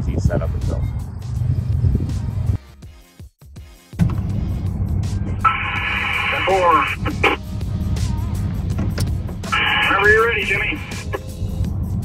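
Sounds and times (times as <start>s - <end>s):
truck engine rumbling: 4.0s - 12.0s
tinny voice over radio: 5.5s - 7.4s, 9.6s - 11.2s.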